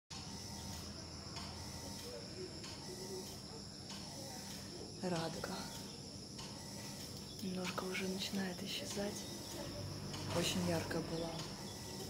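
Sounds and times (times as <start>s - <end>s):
insects chirring: 0.1s - 12.0s.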